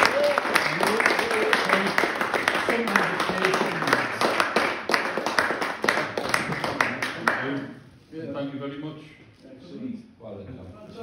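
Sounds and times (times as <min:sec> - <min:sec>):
people clapping: 0:00.0 - 0:07.8.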